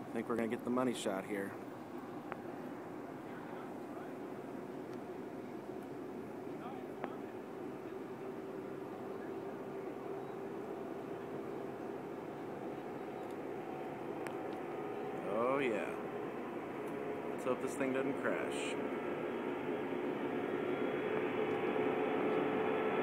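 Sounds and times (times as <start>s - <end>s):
jet engines overhead: 0.0s - 23.0s.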